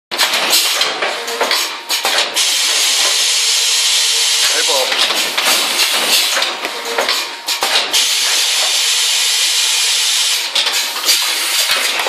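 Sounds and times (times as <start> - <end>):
machine metal clatter: 0.1 - 9.6, 10.2 - 12.0
machine hiss: 1.9 - 6.5, 7.5 - 12.0.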